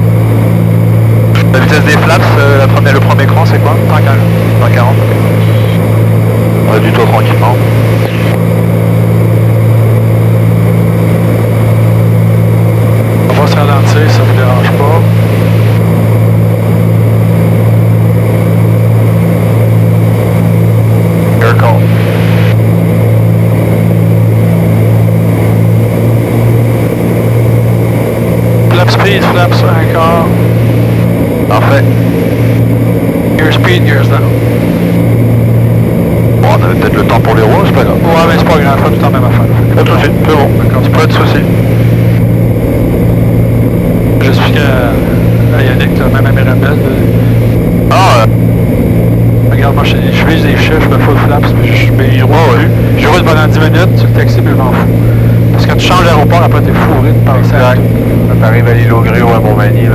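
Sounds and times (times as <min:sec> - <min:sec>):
airplane engines droning: 0:00.0 - 0:59.9
voice over radio: 0:01.2 - 0:08.5, 0:13.0 - 0:15.9, 0:20.4 - 0:22.6, 0:28.7 - 0:35.1, 0:36.2 - 0:42.3, 0:44.1 - 0:48.4, 0:49.4 - 0:59.9.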